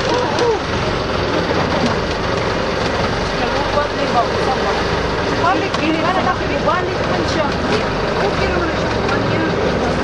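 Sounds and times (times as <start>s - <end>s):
motorboat engine running: 0.0s - 10.0s.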